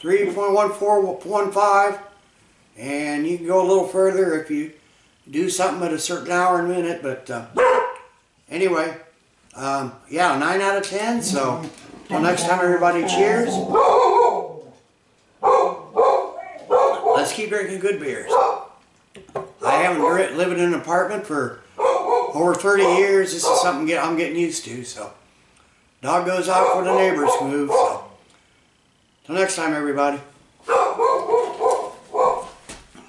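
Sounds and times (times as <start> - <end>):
dog barking: 7.6 - 8.2, 13.0 - 14.7, 15.4 - 17.4, 18.3 - 18.8, 19.6 - 20.4, 21.8 - 23.8, 26.5 - 28.2, 30.7 - 32.6.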